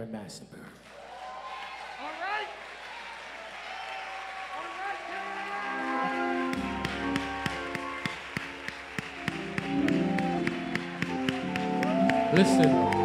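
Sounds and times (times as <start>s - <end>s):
sustained keyboard chords: 5.6s - 13.0s
sharp tapping beat: 6.6s - 13.0s.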